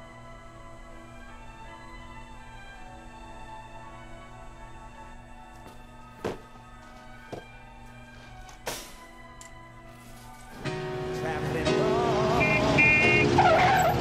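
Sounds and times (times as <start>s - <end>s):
soft background music: 0.0s - 14.0s
louder music: 6.2s - 13.4s
car engine: 10.5s - 14.0s
tyres squealing: 12.2s - 14.0s.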